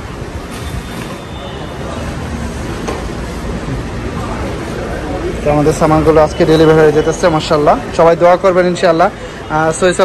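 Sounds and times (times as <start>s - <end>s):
rumbling background noise: 0.0s - 10.0s.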